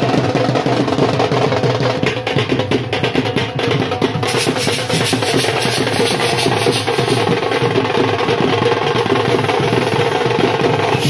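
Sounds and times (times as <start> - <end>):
fast drumming: 0.0 - 11.0
music: 0.0 - 11.0.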